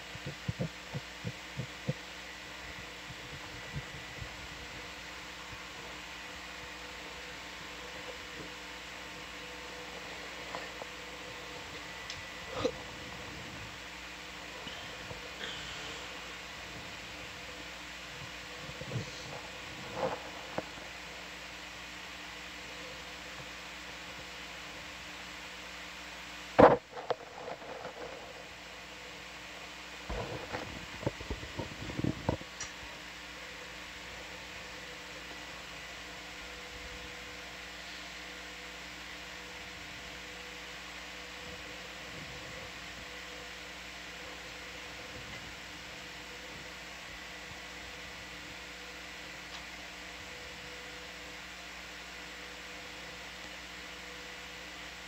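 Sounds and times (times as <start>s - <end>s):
low electrical hum: 0.0s - 55.0s
steady hiss: 0.0s - 55.0s.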